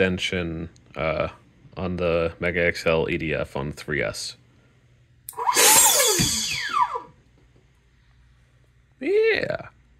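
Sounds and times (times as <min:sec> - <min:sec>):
fan whine spinning down: 0:05.3 - 0:07.3.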